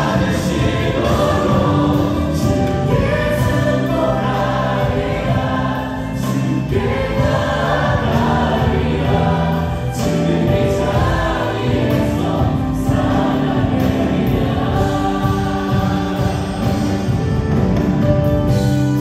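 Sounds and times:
group singing praise song: 0.0 - 17.5
live band playing: 0.0 - 19.0.

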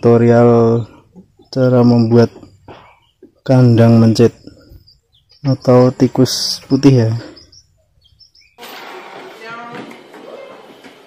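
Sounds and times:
person speaking: 0.0 - 2.6, 3.4 - 4.8, 5.4 - 7.5
steady background noise: 0.0 - 11.0
faint high bird chirps: 0.7 - 8.6.

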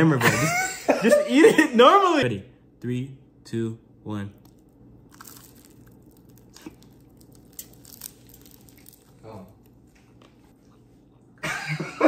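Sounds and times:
crisp toast crunching: 4.4 - 9.8.

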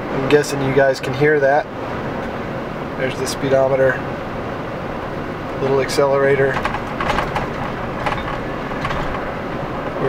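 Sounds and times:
in-cabin road and engine noise: 0.0 - 10.0.

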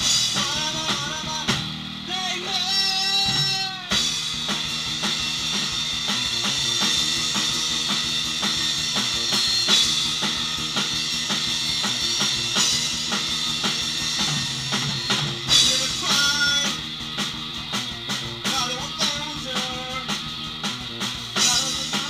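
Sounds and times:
bass guitar notes: 0.0 - 22.0
drum kit beat: 0.0 - 22.0.

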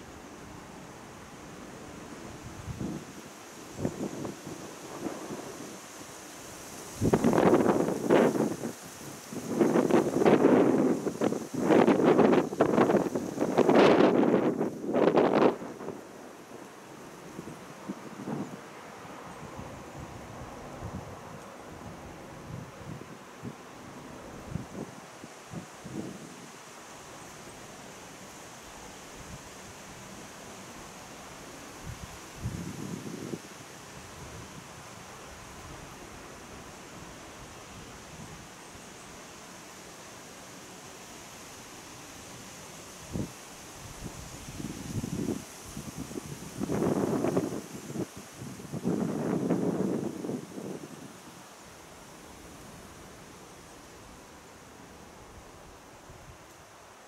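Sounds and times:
wind gusting across microphone: 0.0 - 56.9.

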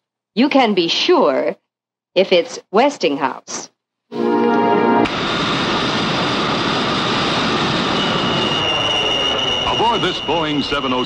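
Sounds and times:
held musical chord: 4.1 - 5.1
steady high whine: 4.1 - 11.0
jet engines roaring: 5.0 - 11.0.

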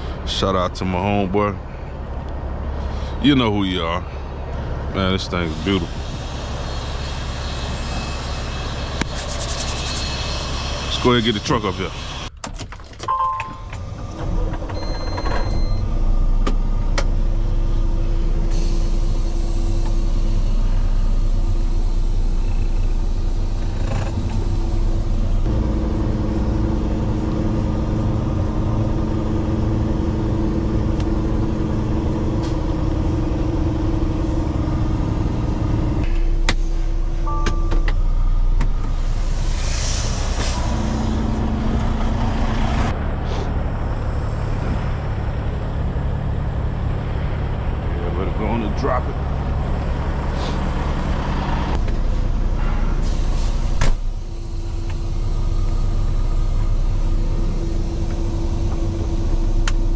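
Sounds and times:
diesel truck engine running: 0.0 - 59.9
air hiss: 39.0 - 41.3.

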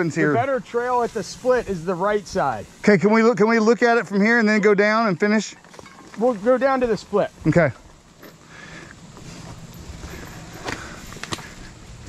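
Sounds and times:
shuffling footsteps on dirt: 5.5 - 12.0
bike handling noise: 5.6 - 12.0.

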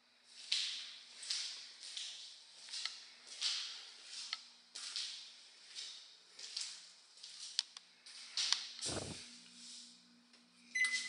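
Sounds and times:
short electronic beep: 10.8 - 11.0.

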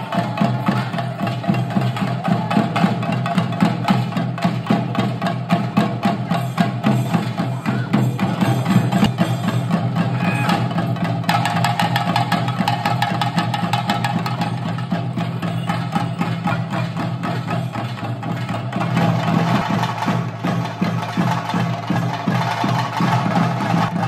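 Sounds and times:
drums beaten fast with sticks: 0.0 - 24.0.

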